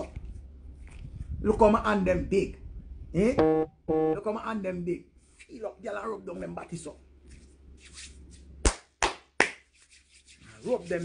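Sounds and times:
hands rubbing and swishing: 7.3 - 8.8, 9.4 - 11.0
sharp hand slap: 8.6 - 9.6.

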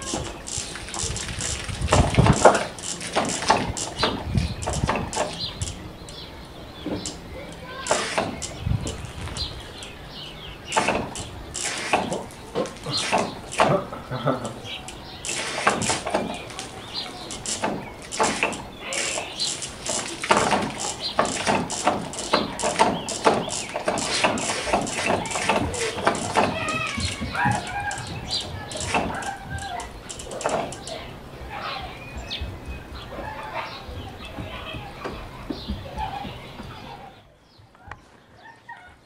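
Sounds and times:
speaker crackling and popping: 0.0 - 31.0.

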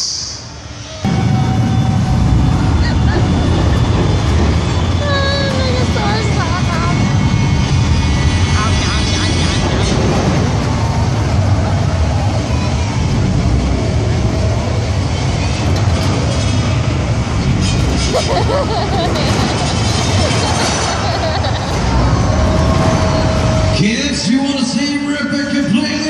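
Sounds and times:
heavy engine rumble: 0.0 - 26.0.

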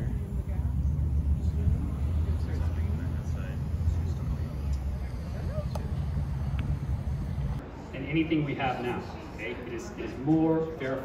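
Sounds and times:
steady low rumble: 0.0 - 7.7
faint voices: 0.0 - 11.0.

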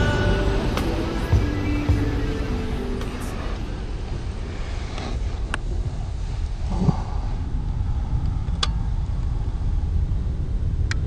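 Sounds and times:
ocean surf rumbling: 0.0 - 11.0.

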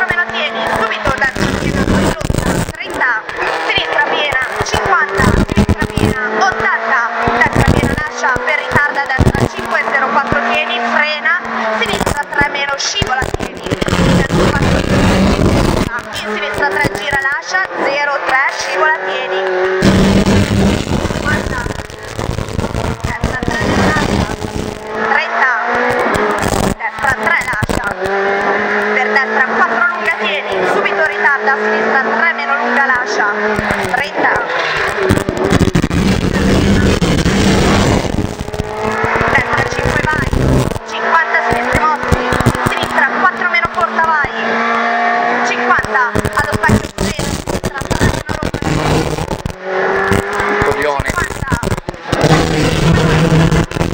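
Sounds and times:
rally car engine revving: 0.0 - 53.9.

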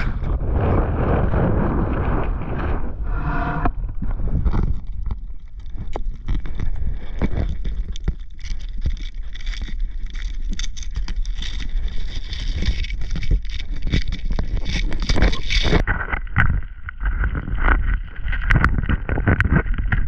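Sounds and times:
wind buffeting microphone: 0.0 - 5.3
sharp clicks and crackles: 0.0 - 20.0.

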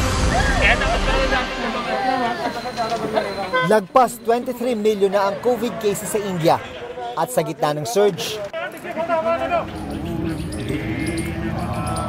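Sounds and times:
swoosh with deep rumble: 0.0 - 2.8
background voices: 8.1 - 12.0.

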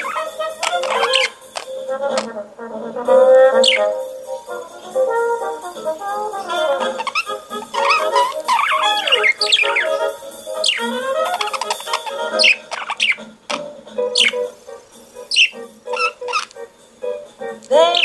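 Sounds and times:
budgerigar chirping and warbling: 0.0 - 2.3, 3.6 - 4.0, 6.4 - 13.3, 14.0 - 14.6, 15.2 - 16.6, 17.8 - 18.0
brass-led instrumental music: 0.0 - 18.0.

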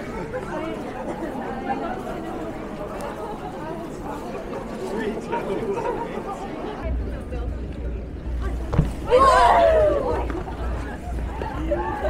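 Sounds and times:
overlapping chatter of passers-by: 0.0 - 12.0.

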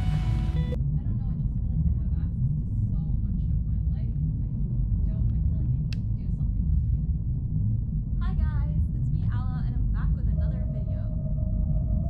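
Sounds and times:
music: 0.0 - 6.7, 8.5 - 12.0
low rumble: 0.0 - 12.0.

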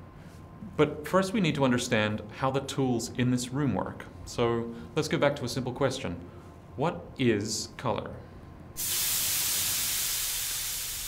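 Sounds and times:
flambe flame hissing: 8.8 - 11.0.

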